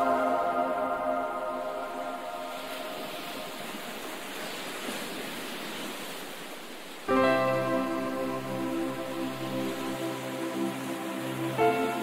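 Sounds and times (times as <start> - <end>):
ocean surf on beach: 0.0 - 12.0.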